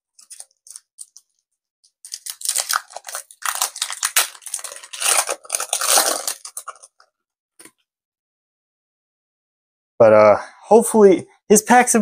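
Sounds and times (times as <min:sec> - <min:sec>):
foil wrapper crackling: 0:02.0 - 0:07.0.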